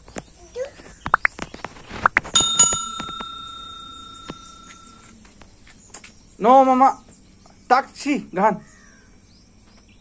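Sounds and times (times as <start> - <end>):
bell ringing: 2.4 - 5.1.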